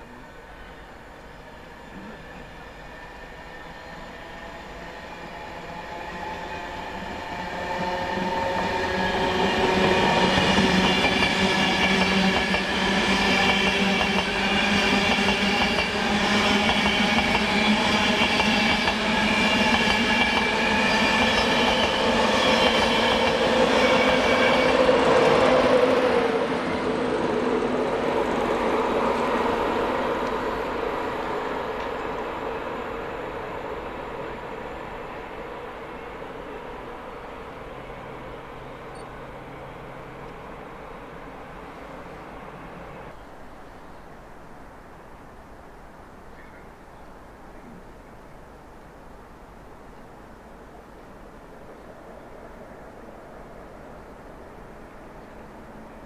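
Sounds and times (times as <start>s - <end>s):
electric train passing: 0.0s - 45.7s, 49.5s - 56.0s
train whine: 0.0s - 45.7s.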